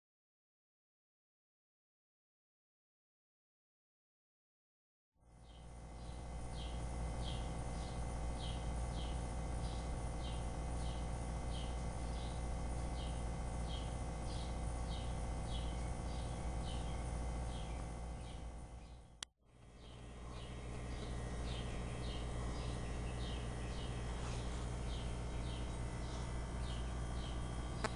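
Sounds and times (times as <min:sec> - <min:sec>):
low hum: 0:05.2 - 0:27.9
bird chirping: 0:05.4 - 0:19.1, 0:19.8 - 0:27.9.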